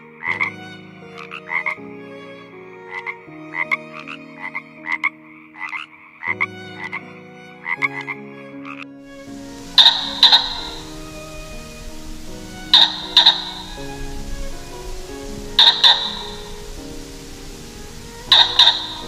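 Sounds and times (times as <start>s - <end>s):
soft music of low notes: 0.0s - 19.0s
frogs croaking: 4.4s - 7.0s, 8.7s - 19.0s.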